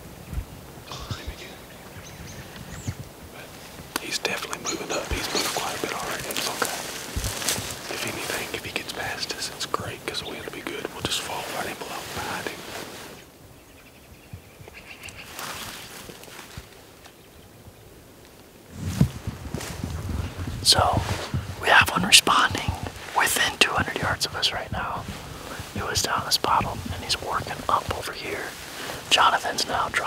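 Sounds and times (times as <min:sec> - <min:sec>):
people whispering: 0:00.8 - 0:01.9, 0:03.3 - 0:13.1, 0:20.6 - 0:30.0.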